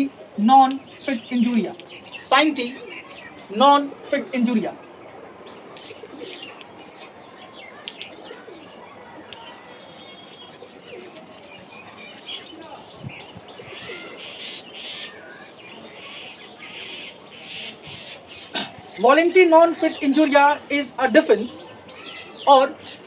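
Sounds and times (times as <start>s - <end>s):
birds chirping and cooing: 0.0s - 23.0s.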